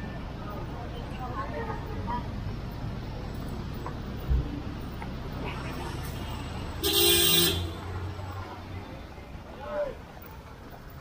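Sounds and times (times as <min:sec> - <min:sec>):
traffic engines running: 0:00.0 - 0:11.0
vehicle horn honk: 0:06.8 - 0:07.8.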